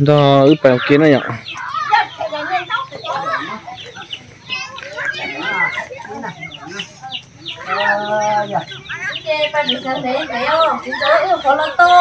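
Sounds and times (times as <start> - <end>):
chickens clucking: 0.0 - 12.0
people and children talking: 0.0 - 12.0.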